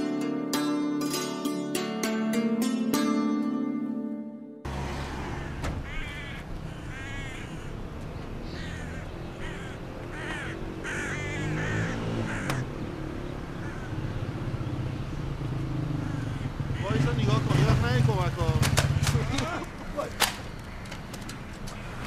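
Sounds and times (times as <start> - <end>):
engine humming: 4.6 - 22.0
crows cawing: 5.0 - 12.8, 13.5 - 14.2, 15.9 - 17.2, 18.8 - 22.0.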